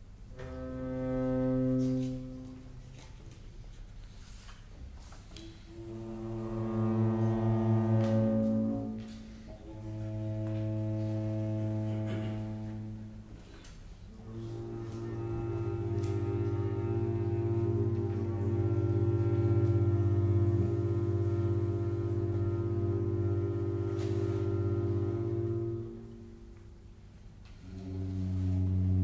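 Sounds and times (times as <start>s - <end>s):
low sustained chamber music chords: 0.0s - 3.3s, 5.4s - 29.0s.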